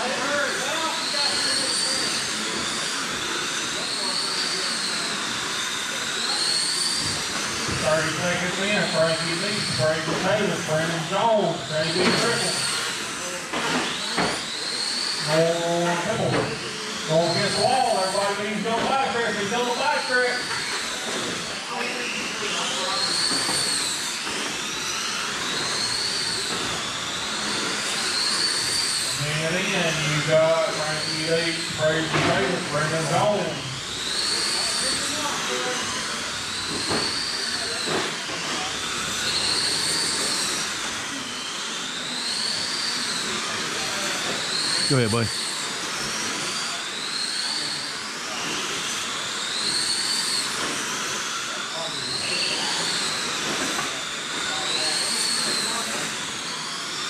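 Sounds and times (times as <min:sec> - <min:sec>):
electric motors whining: 0:00.0 - 0:57.0
person calling out: 0:44.9 - 0:45.3.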